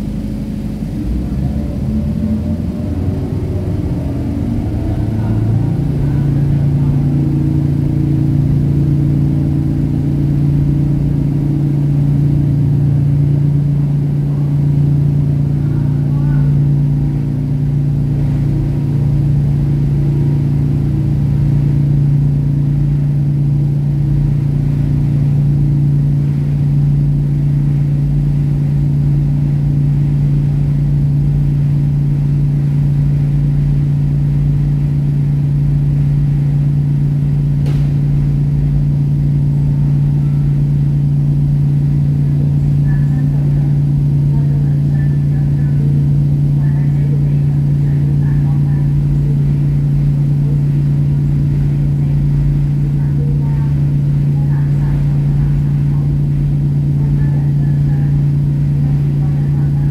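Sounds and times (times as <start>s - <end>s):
ferry engines droning: 0.0s - 59.9s.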